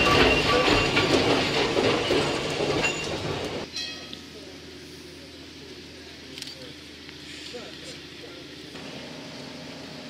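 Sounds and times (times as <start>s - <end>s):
rail clicks: 0.0s - 4.2s
tram wheels on rails: 0.0s - 4.3s.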